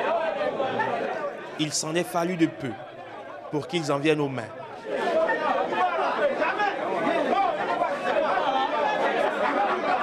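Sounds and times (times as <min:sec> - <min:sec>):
crowd talking and arguing: 0:00.0 - 0:10.0.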